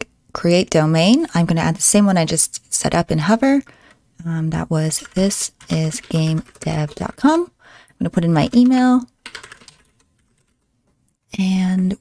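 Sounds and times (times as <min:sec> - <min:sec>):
computer keyboard typing: 0:04.8 - 0:10.7.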